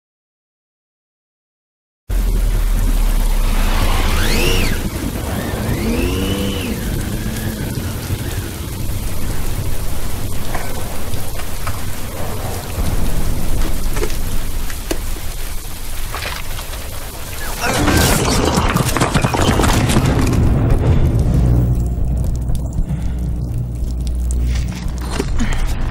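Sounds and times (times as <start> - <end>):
heavy rain on a wet street: 2.1 - 25.9.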